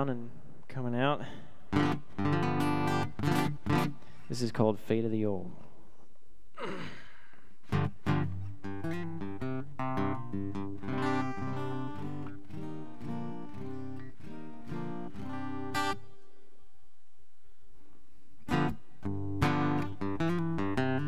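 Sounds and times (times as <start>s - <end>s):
acoustic guitar chords: 1.6s - 4.3s, 7.6s - 16.9s, 18.4s - 21.0s.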